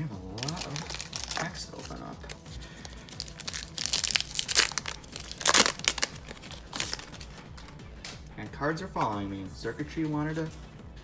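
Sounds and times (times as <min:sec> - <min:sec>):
wrapper being torn open: 0:00.2 - 0:07.4
foil wrapper crinkling: 0:00.2 - 0:07.7.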